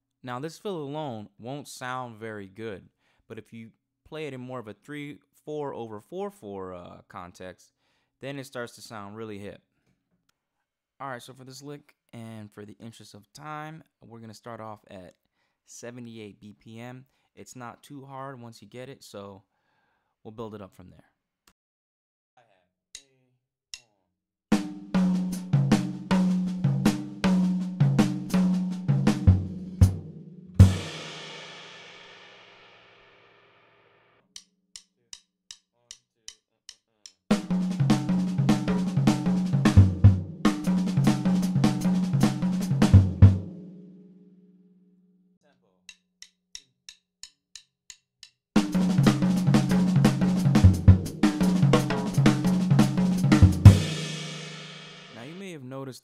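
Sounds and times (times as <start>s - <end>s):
drum kit playing: 24.5s - 33.0s, 37.3s - 43.8s, 48.6s - 55.4s
metronome clicks: 34.3s - 37.2s, 45.8s - 48.4s
cymbal crash: 53.2s - 55.2s.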